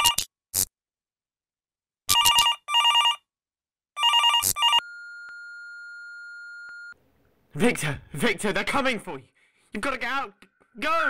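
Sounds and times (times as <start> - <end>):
telephone ringing: 2.1 - 3.3, 4.0 - 7.0.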